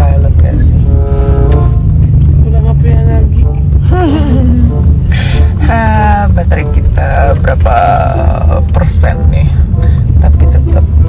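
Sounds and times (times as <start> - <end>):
car cabin rumble: 0.0 - 11.0.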